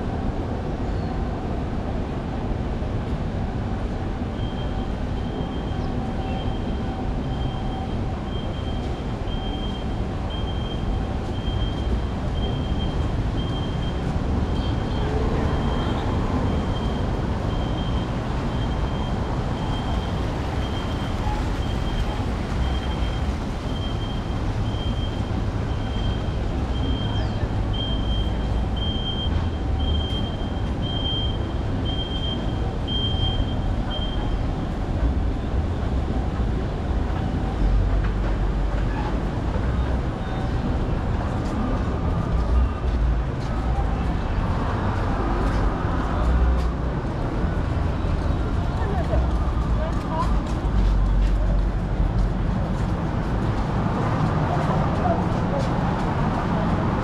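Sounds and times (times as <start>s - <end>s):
city traffic rumble: 0.0s - 57.0s.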